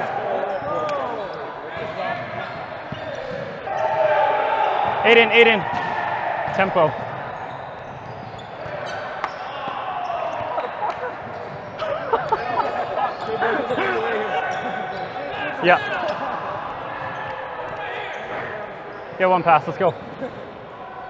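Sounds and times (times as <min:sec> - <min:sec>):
players' voices: 0:00.0 - 0:21.0.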